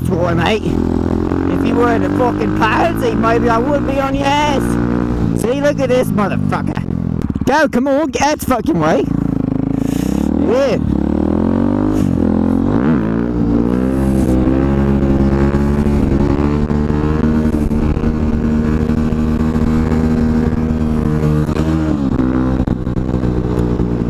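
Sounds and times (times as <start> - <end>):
motorcycle engine revving: 0.0 - 24.0.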